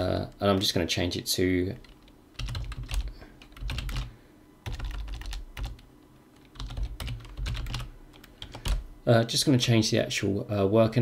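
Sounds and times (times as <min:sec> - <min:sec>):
typing on computer keyboard: 0:01.8 - 0:08.8.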